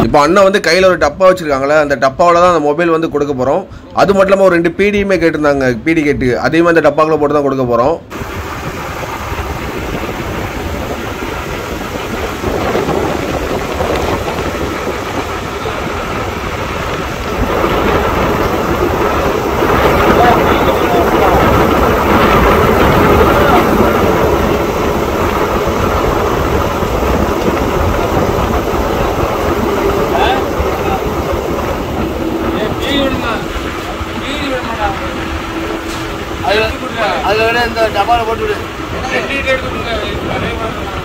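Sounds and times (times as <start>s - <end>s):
wind rumbling on microphone: 7.9s - 41.0s
boat engine running: 8.0s - 41.0s
sea wash: 8.1s - 41.0s.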